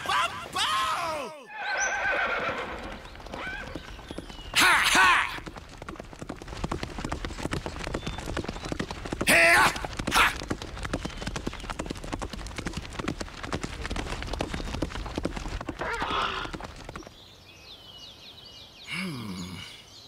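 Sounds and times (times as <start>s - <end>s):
horse whinny: 1.5s - 3.8s, 15.8s - 16.6s
horse hooves galloping on dirt: 2.0s - 17.3s.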